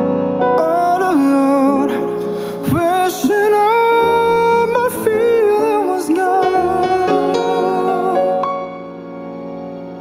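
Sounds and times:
soft band accompaniment: 0.0s - 10.0s
man singing: 0.4s - 8.8s.

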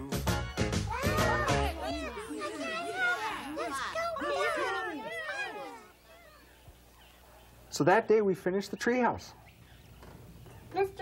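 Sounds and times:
high-pitched puppet voices calling: 0.4s - 6.7s.

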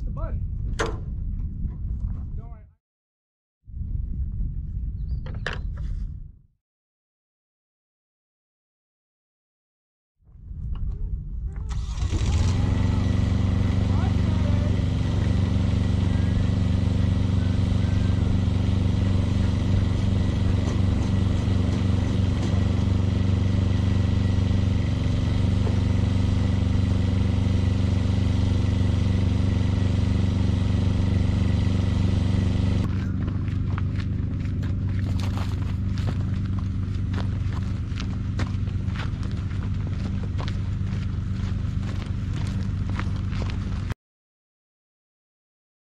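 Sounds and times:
engine running steadily: 10.7s - 43.9s.

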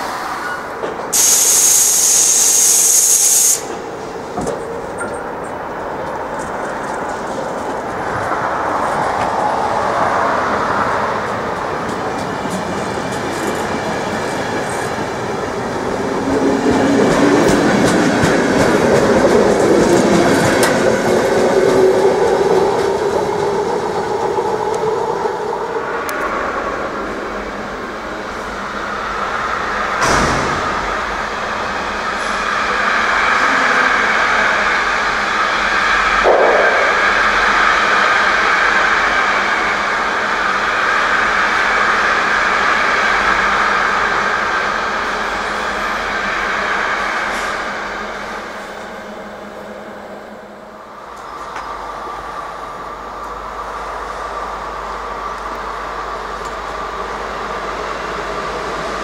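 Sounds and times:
passenger coaches rolling: 0.0s - 59.0s
sharp knock: 30.0s - 31.0s, 36.2s - 37.9s.

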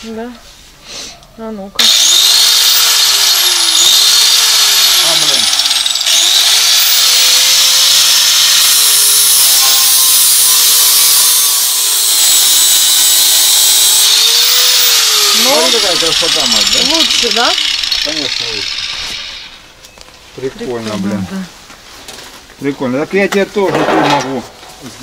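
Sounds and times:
angle grinder grinding metal: 1.8s - 19.8s.

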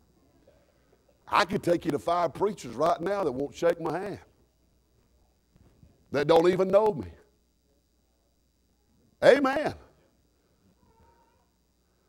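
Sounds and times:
faint high tone: 10.7s - 11.6s.

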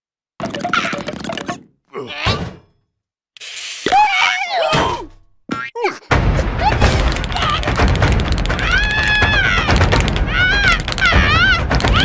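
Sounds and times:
cartoon character wailing: 3.9s - 5.0s, 8.6s - 12.0s.

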